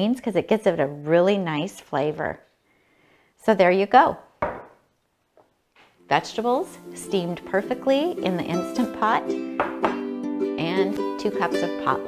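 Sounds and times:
glass bottle knocking on stone: 0:09.6 - 0:10.0.

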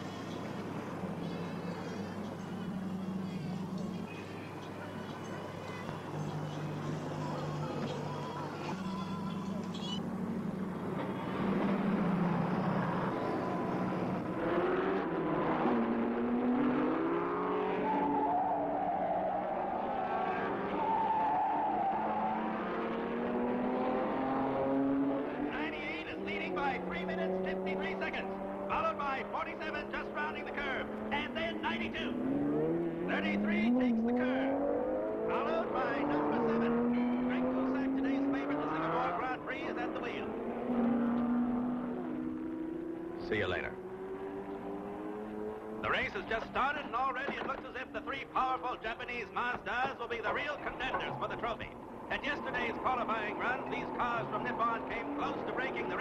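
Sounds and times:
racing car engines revving and passing: 0:00.0 - 0:56.0.

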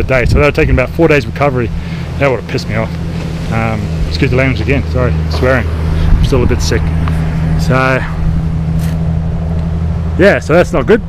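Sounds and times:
steady low hum: 0:00.0 - 0:11.0
person speaking: 0:00.9 - 0:08.4.

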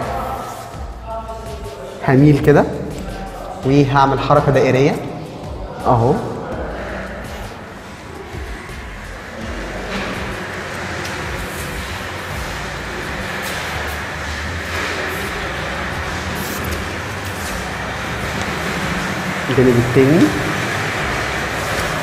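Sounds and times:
steady machine rushing noise: 0:00.0 - 0:22.0.

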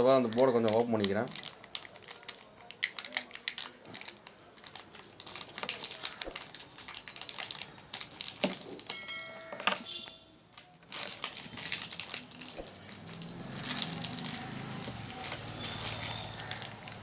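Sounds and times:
plastic packaging crinkling: 0:00.0 - 0:17.0.

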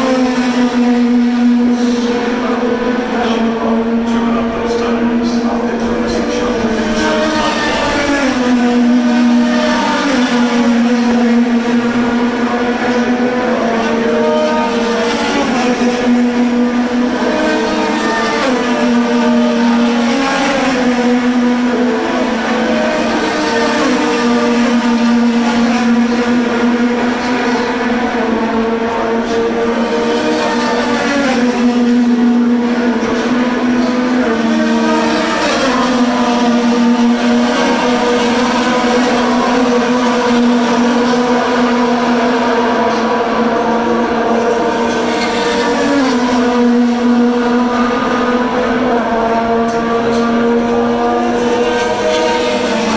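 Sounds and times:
racing car engines droning: 0:00.0 - 0:52.9.

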